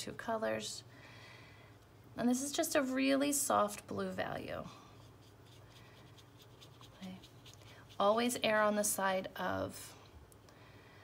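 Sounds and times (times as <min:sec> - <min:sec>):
brush scratching on wet paper: 0:04.9 - 0:08.7.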